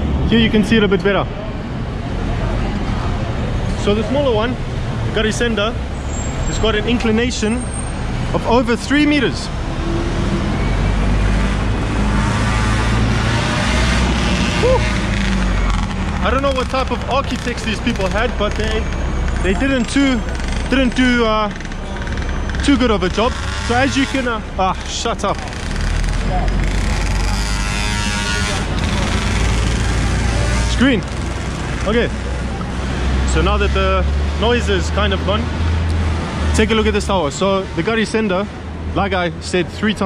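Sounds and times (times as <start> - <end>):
bus engine droning: 0.0 - 40.0
street traffic: 0.0 - 40.0.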